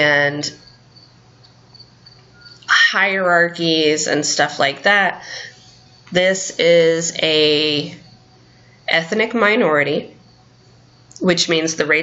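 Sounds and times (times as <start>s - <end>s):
woman speaking: 0.0s - 0.6s, 2.6s - 8.0s, 8.9s - 10.2s, 11.2s - 12.0s
thin high steady whine: 0.0s - 12.0s.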